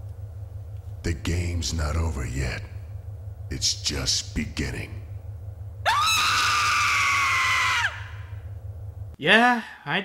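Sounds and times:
steady low hum: 0.0s - 10.0s
woman's high-pitched scream: 5.9s - 8.2s.

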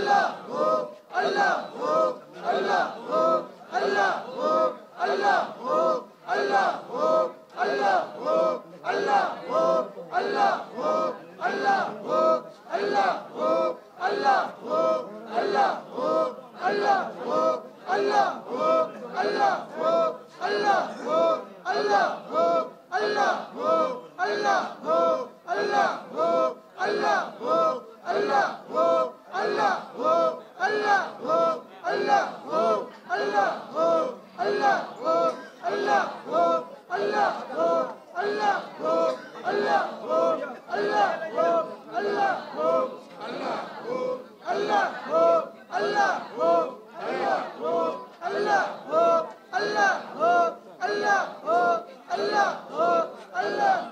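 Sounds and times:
men chanting over loudspeakers: 0.0s - 53.9s.

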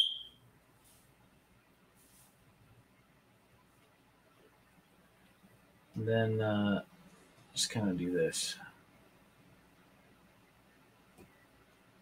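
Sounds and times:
short high electronic beep: 0.0s - 0.4s.

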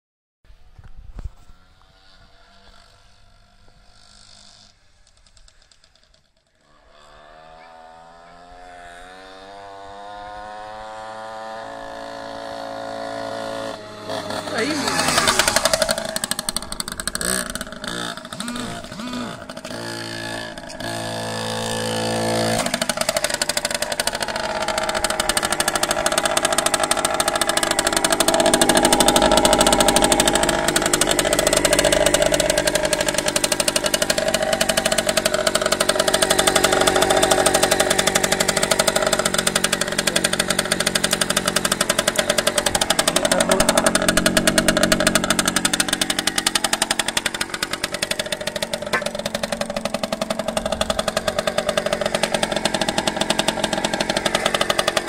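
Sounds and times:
two-stroke engine revving: 1.5s - 55.0s.

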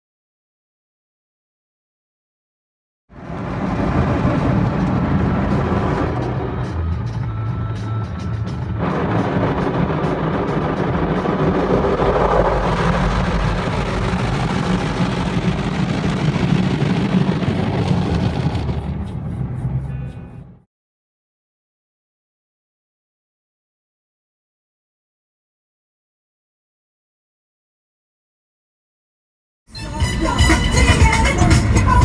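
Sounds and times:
water spraying over car windows: 8.8s - 19.8s.

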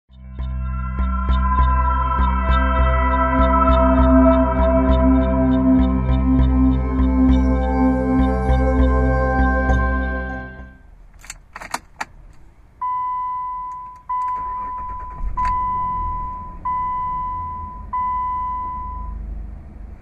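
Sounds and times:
dashboard warning chime: 0.3s - 10.9s, 12.8s - 19.2s.

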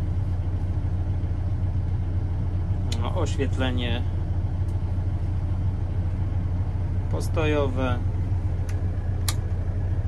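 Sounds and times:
diesel engine idling: 0.0s - 10.0s
light switch click: 8.7s - 9.4s.

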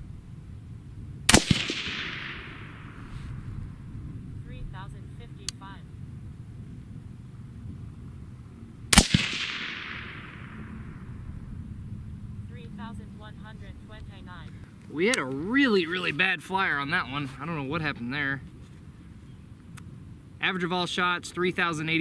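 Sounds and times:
suppressed rifle shot: 1.2s - 3.8s, 8.9s - 11.3s
gunshot echo: 1.3s - 3.5s, 8.9s - 11.3s.

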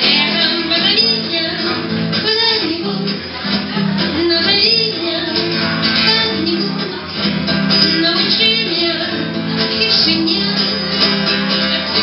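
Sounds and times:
woman singing into a microphone: 0.0s - 11.1s
guitar strumming: 0.0s - 12.0s.

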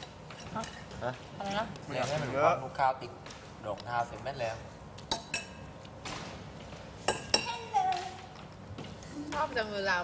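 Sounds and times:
cutlery clinking against plate: 5.0s - 5.8s, 7.0s - 7.6s.

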